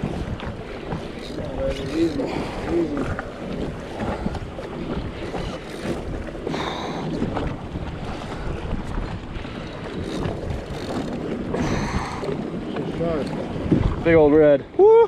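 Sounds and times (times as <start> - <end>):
water lapping against hull: 0.0 - 15.0
wind buffeting microphone: 0.0 - 15.0.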